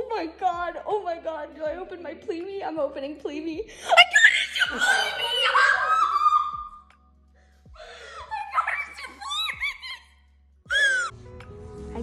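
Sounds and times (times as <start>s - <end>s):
woman crying laughter: 4.0s - 6.8s, 8.0s - 10.0s.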